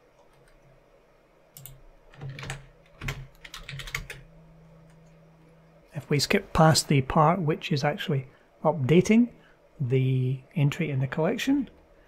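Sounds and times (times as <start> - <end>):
faint steady hum: 0.0 - 12.0
computer keyboard clicking: 1.6 - 4.2.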